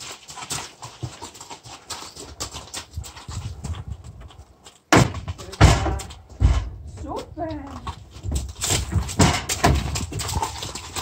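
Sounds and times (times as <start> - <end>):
hooves knocking on trailer ramp: 2.2 - 11.0.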